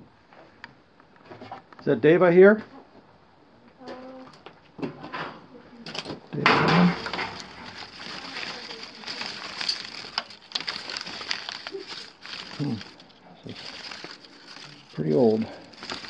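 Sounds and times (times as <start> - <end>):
newspaper crinkling and rustling: 5.9 - 16.0.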